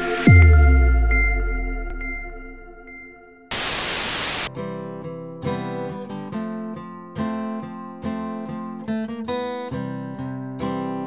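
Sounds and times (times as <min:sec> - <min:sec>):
synth tone: 0:00.0 - 0:04.5
white noise static burst: 0:03.5 - 0:04.5
strummed guitar music: 0:04.5 - 0:11.0.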